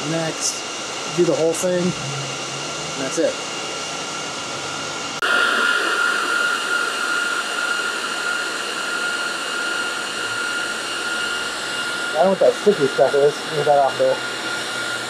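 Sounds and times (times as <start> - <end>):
server cooling fans whining: 0.0 - 15.0.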